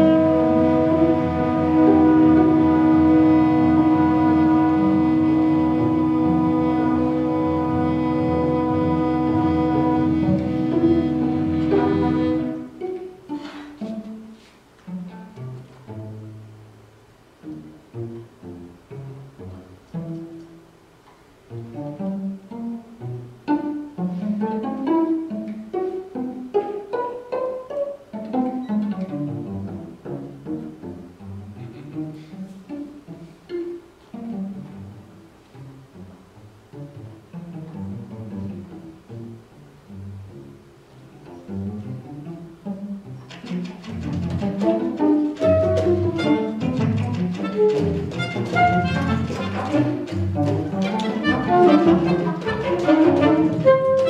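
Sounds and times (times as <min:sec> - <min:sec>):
horns short sharp notes: 0:00.0 - 0:14.2, 0:44.7 - 0:54.0
cello plucked notes: 0:00.0 - 0:54.0.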